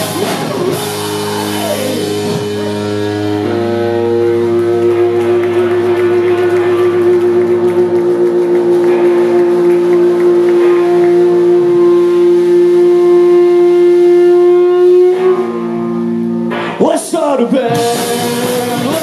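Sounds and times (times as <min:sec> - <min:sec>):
low bass drone: 0:00.0 - 0:16.8
electric guitar feedback: 0:00.0 - 0:19.0.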